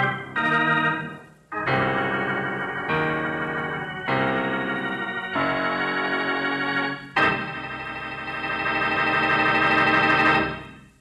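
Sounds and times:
held organ chord: 0:00.0 - 0:11.0.

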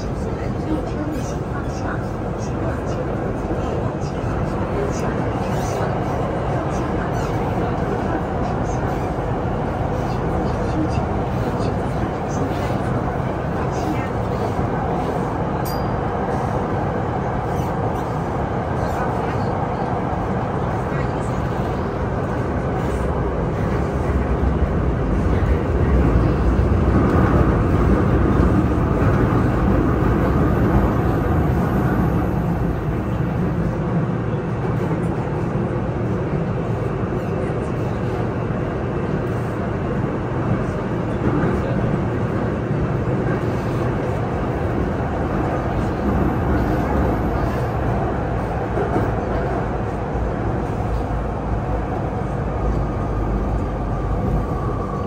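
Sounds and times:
subway train rumbling: 0:00.0 - 0:55.0.

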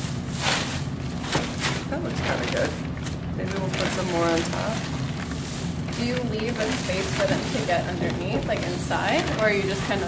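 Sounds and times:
dry straw rustling and crackling: 0:00.0 - 0:10.0
plastic bag rustling: 0:00.0 - 0:10.0.

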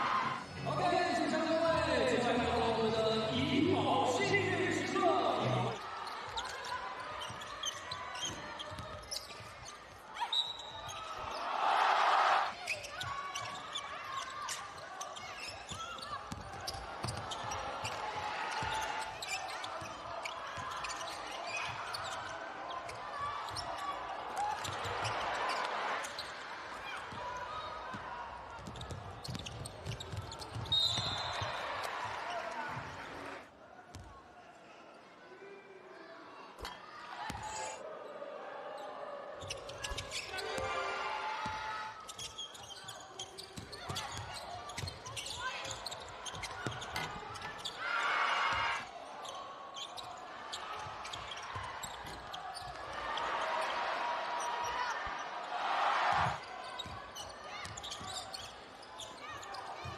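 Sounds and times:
crowd noise: 0:00.0 - 0:59.9
basketball bouncing on hardwood court: 0:28.6 - 0:30.7.

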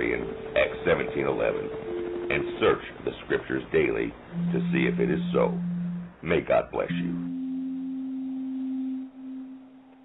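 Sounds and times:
steady low tone: 0:00.0 - 0:10.0.

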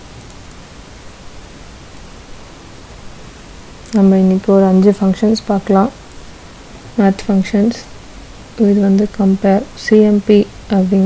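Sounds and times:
background hiss: 0:00.0 - 0:11.0
woman's voice: 0:03.9 - 0:06.0, 0:07.0 - 0:08.0, 0:08.6 - 0:11.0.

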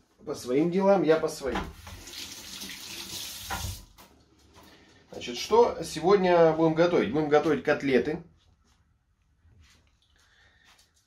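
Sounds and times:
tap water running into sink: 0:01.6 - 0:04.1.

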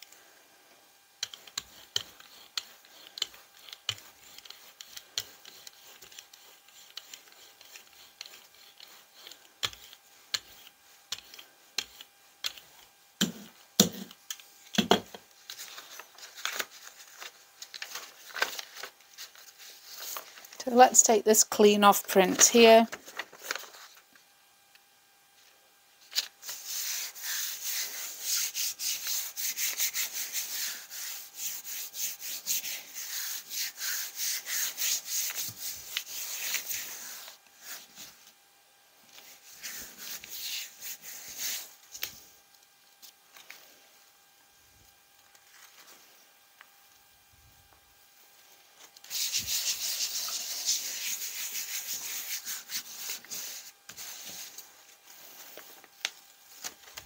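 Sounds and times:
hands rubbing paper: 0:01.2 - 0:12.6, 0:15.5 - 0:20.9, 0:26.2 - 0:38.1, 0:39.2 - 0:41.8, 0:49.0 - 0:57.0.

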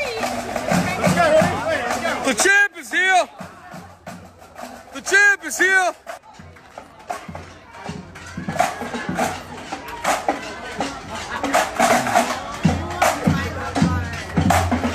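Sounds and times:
marching drum corps: 0:00.0 - 0:14.9.

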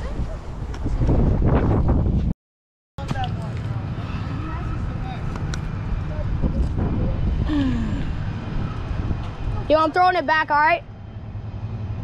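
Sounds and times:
wind rumbling on microphone: 0:00.0 - 0:02.3, 0:03.0 - 0:10.0.

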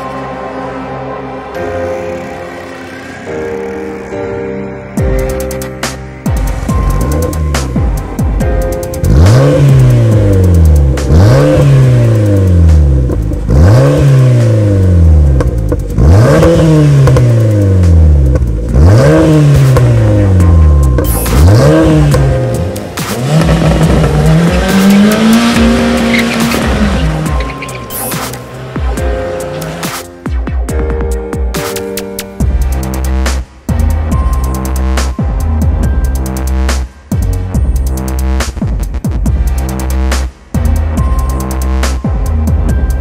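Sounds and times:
background music: 0:00.0 - 0:43.0
car engine revving: 0:05.2 - 0:30.4.

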